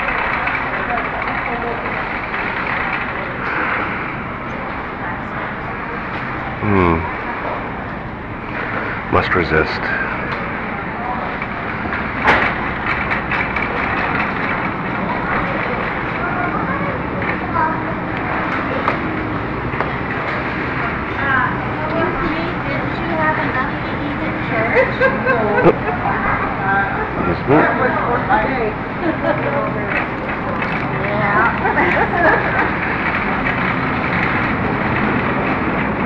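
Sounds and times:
indistinct voices of shoppers: 0.0 - 36.0
steady background noise: 0.0 - 36.0
clicks and rattles: 11.4 - 16.2.

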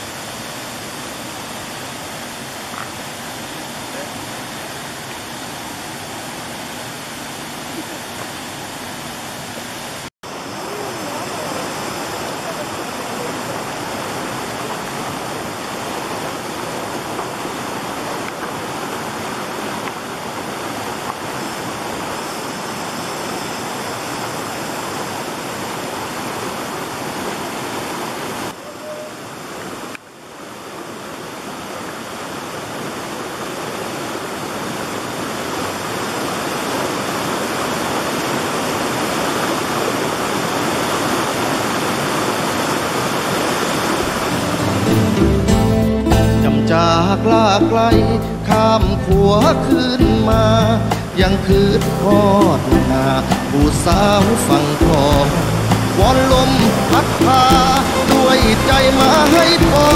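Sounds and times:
waterfall and stream rushing: 0.0 - 59.9.

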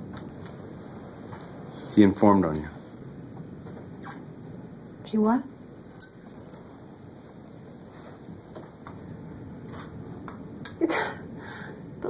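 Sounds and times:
film soundtrack hiss: 0.0 - 12.0
woman laughing: 10.8 - 11.2.

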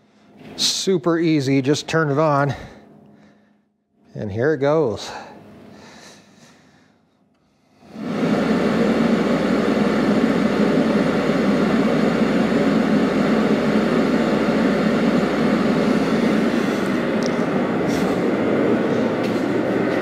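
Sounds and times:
heater blower rushing air: 7.6 - 20.0.

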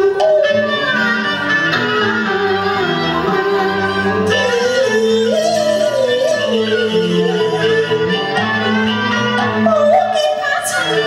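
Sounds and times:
instrumental accompaniment: 0.0 - 11.0
woman singing opera: 2.7 - 8.8, 9.4 - 11.0.

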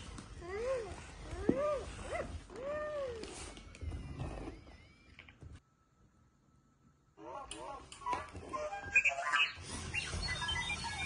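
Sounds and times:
toy robot beeping and whistling: 8.9 - 11.0.

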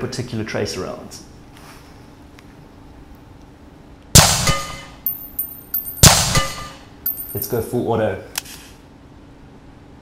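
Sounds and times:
rifle shots: 4.2 - 5.0, 6.0 - 6.9
brass casings pinging on ground: 5.0 - 7.5.

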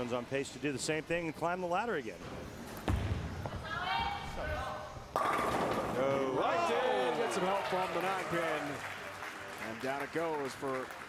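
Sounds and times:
bowling pins crashing: 5.1 - 6.1
bowling ball rolling: 5.1 - 6.4.

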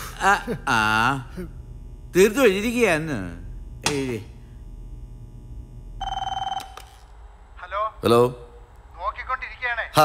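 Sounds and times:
telephone ringing electronic trill: 6.0 - 7.0
clicks: 6.6 - 7.1.

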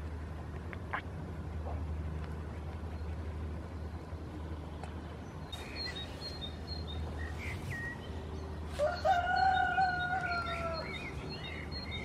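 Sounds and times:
small birds chirping: 2.4 - 12.0
rooster crowing: 8.8 - 11.1.

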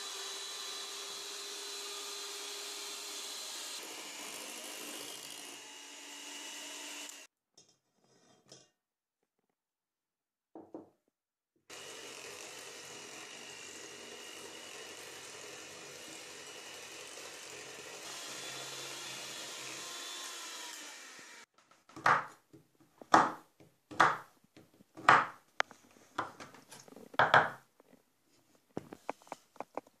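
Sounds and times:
electric hand mixer whisking: 0.0 - 7.3, 11.7 - 21.5
knife chopping on wooden board: 21.9 - 22.4, 23.1 - 24.3, 25.0 - 25.4.

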